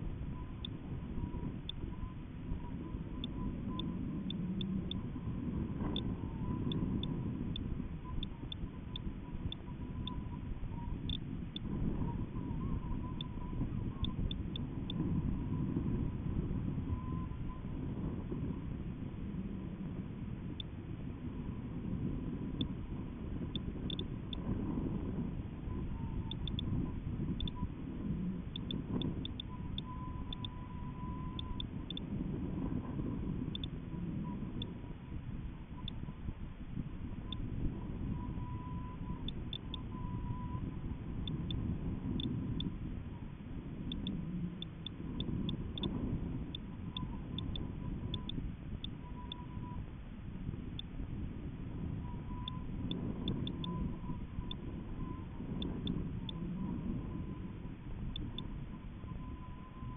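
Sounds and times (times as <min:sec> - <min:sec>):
faint wavering hum: 0:00.0 - 0:59.9
wind buffeting microphone: 0:00.0 - 0:59.9
light ticks: 0:01.6 - 0:02.0, 0:03.1 - 0:05.1, 0:05.8 - 0:10.3, 0:11.0 - 0:11.7, 0:23.5 - 0:24.5, 0:26.2 - 0:27.7, 0:28.4 - 0:32.1, 0:33.5 - 0:33.8, 0:37.3 - 0:37.5, 0:38.5 - 0:40.6, 0:41.2 - 0:42.8, 0:43.8 - 0:49.5, 0:52.3 - 0:56.6, 0:58.0 - 0:58.5.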